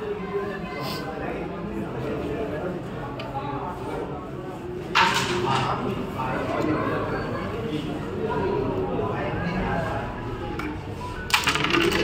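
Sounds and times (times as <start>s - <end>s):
striker hitting carrom pieces: 11.3s - 12.0s
wooden pieces clicking: 11.3s - 12.0s.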